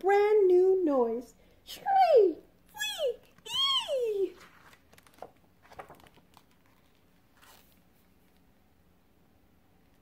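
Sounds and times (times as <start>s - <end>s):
book page turning: 4.3s - 8.5s.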